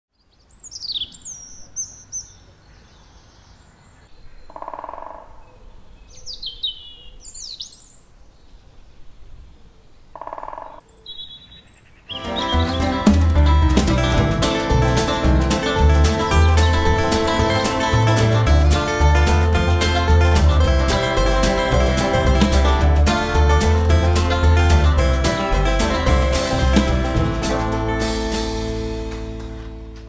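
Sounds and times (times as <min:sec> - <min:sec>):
songbirds singing: 0:00.1 - 0:13.2
woodland ambience: 0:00.1 - 0:29.4
plucked string music with beat: 0:12.2 - 0:30.0
low buzzy sound: 0:12.9 - 0:30.0.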